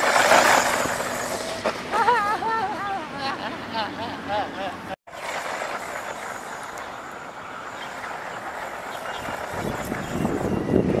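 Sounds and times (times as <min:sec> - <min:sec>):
rc truck tyres and drivetrain hiss: 0:00.0 - 0:01.9, 0:05.1 - 0:11.0.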